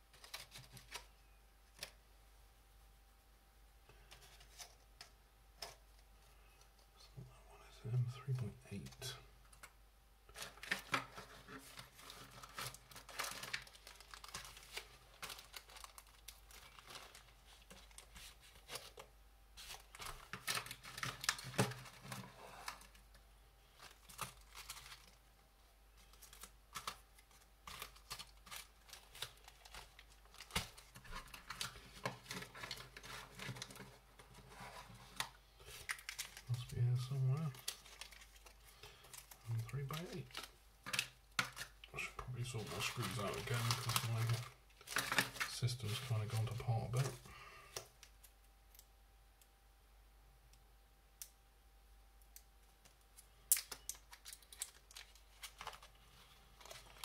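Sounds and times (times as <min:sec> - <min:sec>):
plastic bags crinkling: 0:10.3 - 0:25.3, 0:26.0 - 0:48.8, 0:52.8 - 0:57.0.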